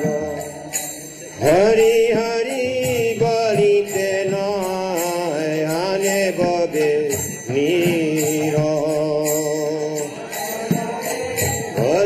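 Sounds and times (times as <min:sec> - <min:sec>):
hand cymbals striking: 0:00.0 - 0:12.0
person singing a chant: 0:00.0 - 0:12.0.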